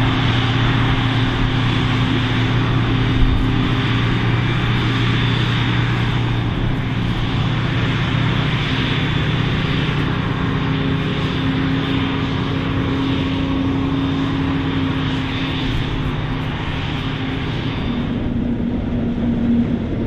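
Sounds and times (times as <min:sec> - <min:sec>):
harvester engine droning: 0:00.0 - 0:20.0
tractor running: 0:00.0 - 0:20.0.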